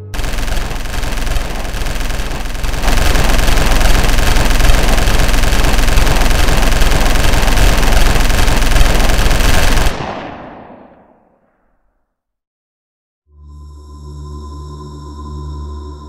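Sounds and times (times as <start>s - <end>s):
automatic machine-gun fire: 0.2s - 11.4s.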